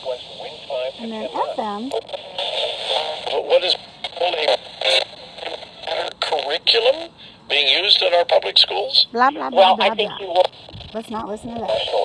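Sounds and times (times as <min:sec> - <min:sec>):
static hiss: 0:00.0 - 0:12.0
talk radio speech through small speaker: 0:00.0 - 0:12.0.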